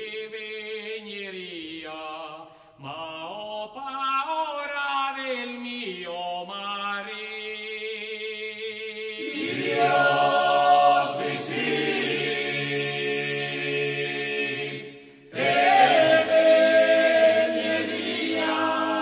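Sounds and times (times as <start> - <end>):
male choir singing a cappella: 8.0 - 19.0.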